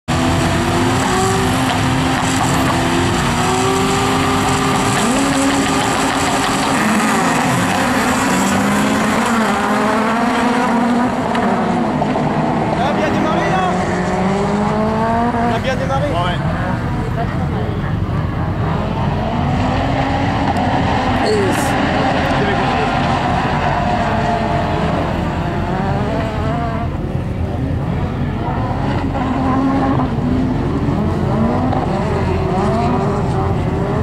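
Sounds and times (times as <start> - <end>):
race car engines revving: 0.1 - 34.0.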